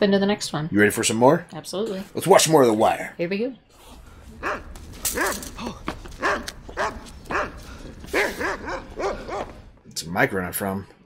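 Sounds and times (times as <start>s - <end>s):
large dog barking: 4.4s - 5.6s, 6.2s - 9.7s.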